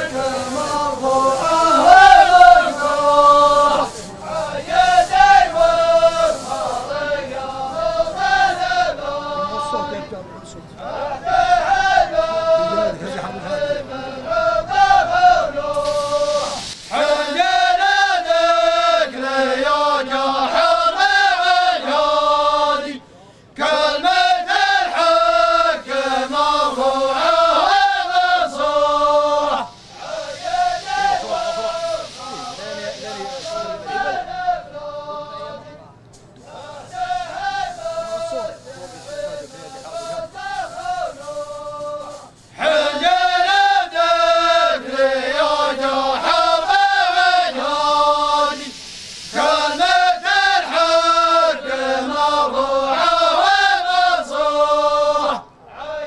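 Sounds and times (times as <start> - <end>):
men chanting together: 0.0 - 56.0.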